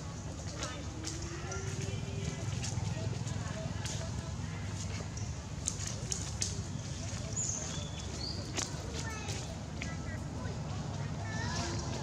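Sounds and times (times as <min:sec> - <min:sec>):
light clicks and rustles: 0:04.8 - 0:10.1.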